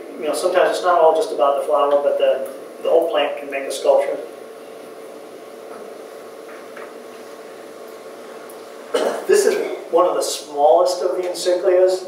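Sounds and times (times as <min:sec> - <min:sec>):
person speaking: 0:00.0 - 0:04.4, 0:09.0 - 0:12.0
room hum: 0:00.0 - 0:12.0.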